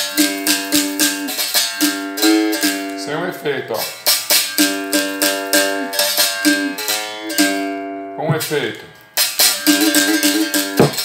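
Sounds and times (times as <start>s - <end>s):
berimbau struck with stick: 9.2s - 11.0s.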